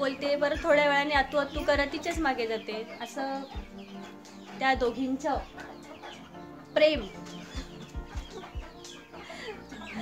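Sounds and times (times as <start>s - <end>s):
hen clucking: 0.0s - 10.0s.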